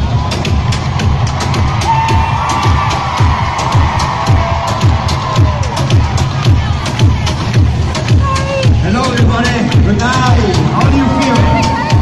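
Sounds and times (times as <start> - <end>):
bass drum beat: 0.0 - 12.0
live concert music: 0.0 - 12.0.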